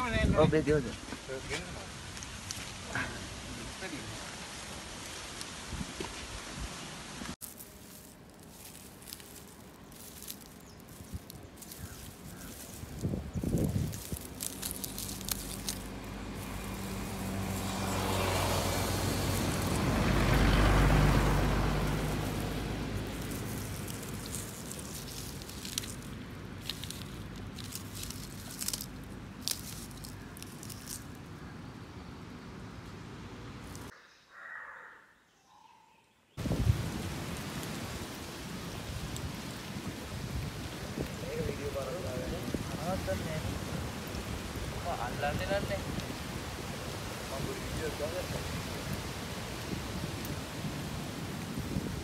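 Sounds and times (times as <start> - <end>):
motor vehicle passing by: 13.8 - 33.9.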